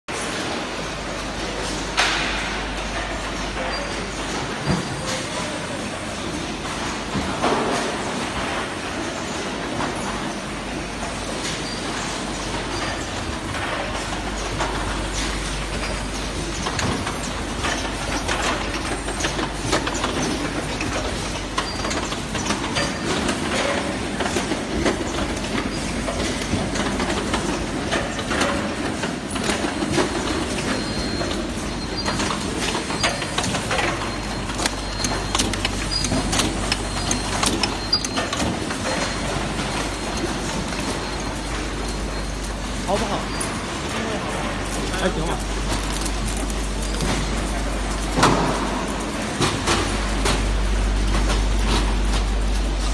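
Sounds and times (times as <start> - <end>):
conveyors and plastic cups rattling: 0.1 - 52.9
low machine hum: 0.1 - 52.9
sharp clicks from packing machine: 6.6 - 43.7, 44.3 - 52.9.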